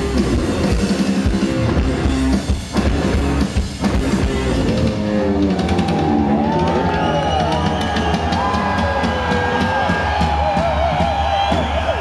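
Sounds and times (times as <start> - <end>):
electric guitar bending notes: 0.0 - 7.0
bass: 0.0 - 12.0
drum kit: 0.0 - 12.0.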